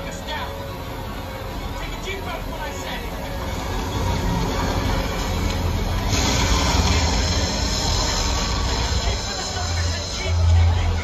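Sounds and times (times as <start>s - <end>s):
rumbling grinding noise: 0.9s - 11.0s.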